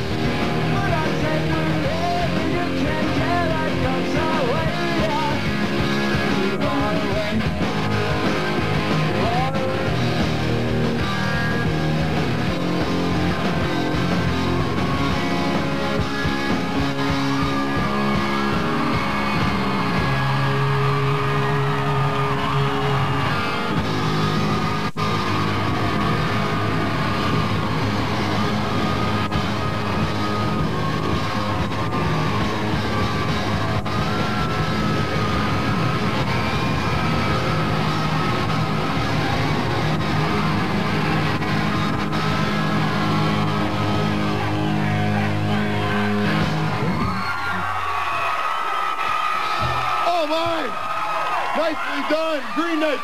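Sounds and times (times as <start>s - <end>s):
live rock band playing: 0.0s - 47.7s.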